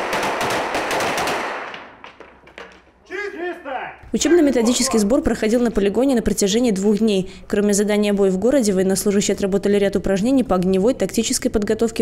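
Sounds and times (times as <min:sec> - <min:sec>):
rapid gunfire: 0:00.0 - 0:01.9.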